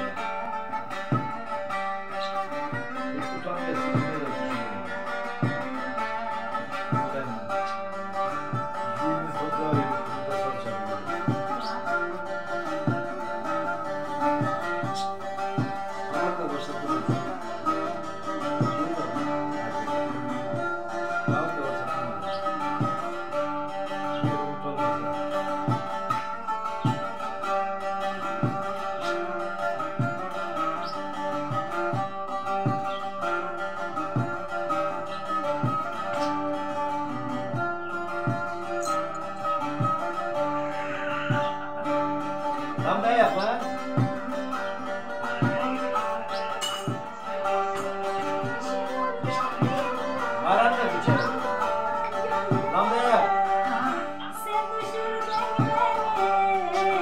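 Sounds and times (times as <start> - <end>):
long-necked lute strummed and picked: 0.0 - 57.0.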